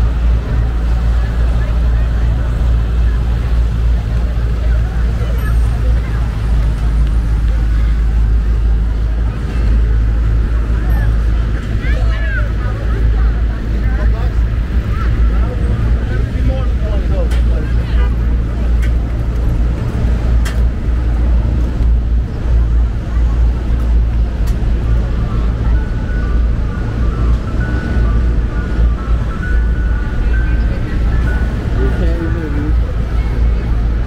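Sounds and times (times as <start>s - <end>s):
traffic rumble: 0.0s - 34.0s
voices of passersby: 0.0s - 34.0s.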